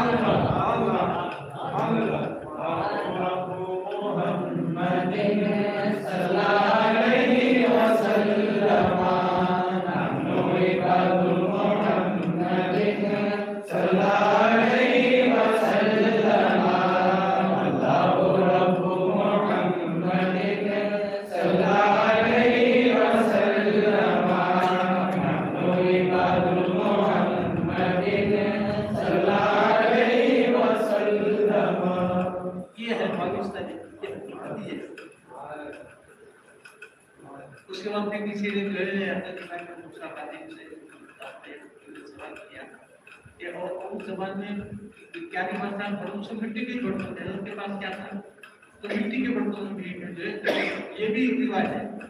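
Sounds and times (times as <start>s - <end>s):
man chanting: 0.0s - 35.8s.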